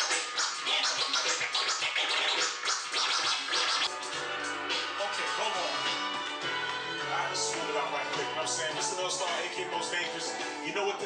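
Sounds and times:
vinyl record scratching: 0.0s - 6.1s
music track: 0.0s - 11.0s.

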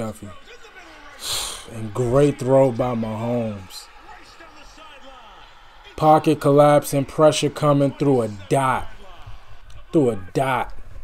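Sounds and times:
faint football commentary on tv: 0.0s - 11.0s.

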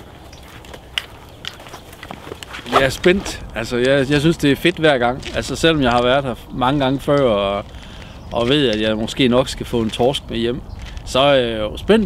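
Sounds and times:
soft footsteps: 0.0s - 11.2s
light knocks of gear: 6.8s - 10.2s.

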